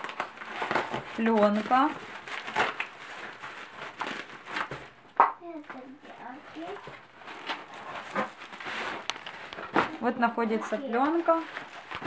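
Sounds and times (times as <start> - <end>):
cardboard and plastic rustling: 0.0 - 12.0.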